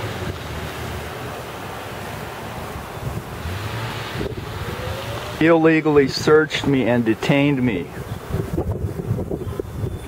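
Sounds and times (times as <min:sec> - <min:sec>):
wind on microphone: 0:02.5 - 0:06.9, 0:07.6 - 0:10.0.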